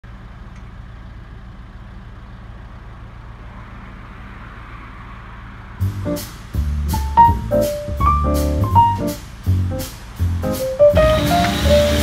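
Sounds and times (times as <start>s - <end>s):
tractor engine running: 0.0s - 3.8s, 5.5s - 12.0s
jazz music: 5.8s - 12.0s.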